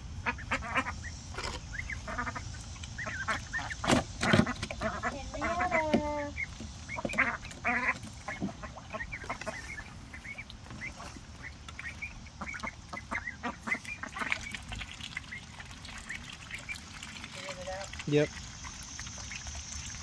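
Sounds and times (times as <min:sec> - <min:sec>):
ducks quacking: 0:00.1 - 0:18.0.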